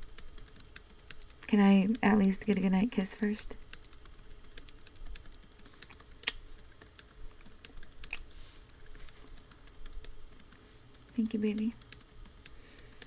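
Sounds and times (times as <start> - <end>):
computer keyboard typing: 0.0 - 13.0.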